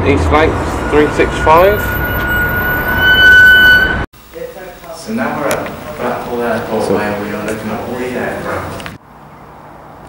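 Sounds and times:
bus engine rumbling: 0.0s - 4.1s
high-pitched squeal: 0.0s - 4.1s.

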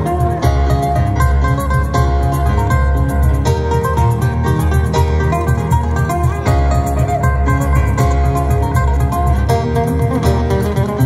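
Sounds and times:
acoustic guitars strumming: 0.0s - 11.0s
steady low beat: 0.0s - 11.0s.

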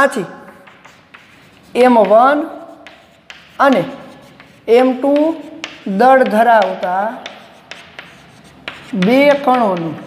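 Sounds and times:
person speaking: 0.0s - 10.0s
chalk tapping and scraping on blackboard: 0.5s - 10.0s.

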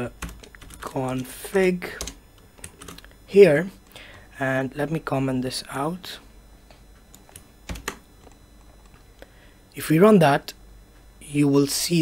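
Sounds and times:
computer keyboard keystrokes: 0.2s - 1.3s, 7.1s - 8.0s.

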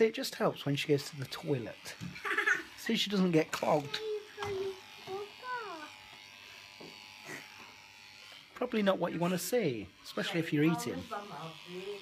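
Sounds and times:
electric clippers buzzing: 0.6s - 12.0s.

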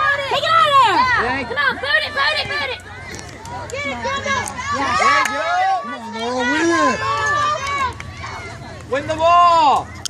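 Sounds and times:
spectators shouting: 0.0s - 10.0s.

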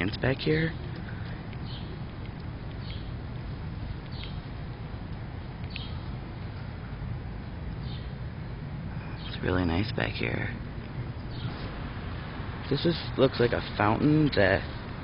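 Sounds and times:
low outdoor rumble: 0.0s - 15.0s.

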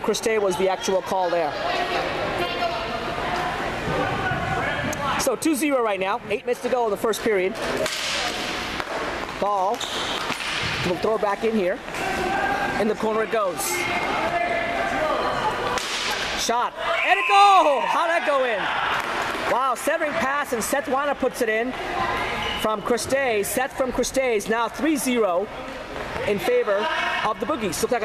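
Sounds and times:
players shouting: 11.9s - 22.8s.

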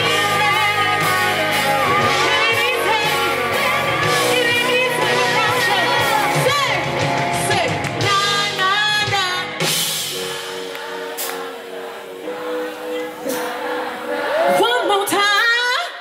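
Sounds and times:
woman singing with vibrato: 0.0s - 9.5s, 12.4s - 16.0s
live band: 0.0s - 15.1s.

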